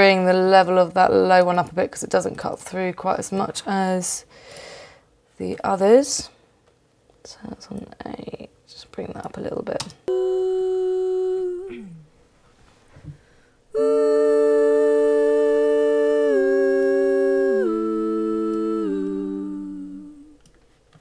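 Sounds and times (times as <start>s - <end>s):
women singing close harmony: 10.1s - 12.0s, 13.7s - 20.4s.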